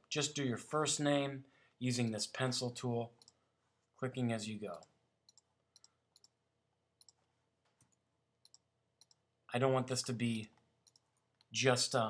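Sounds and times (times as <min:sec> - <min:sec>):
faint computer mouse clicks: 0:04.7 - 0:06.4, 0:07.0 - 0:09.2, 0:10.5 - 0:11.5.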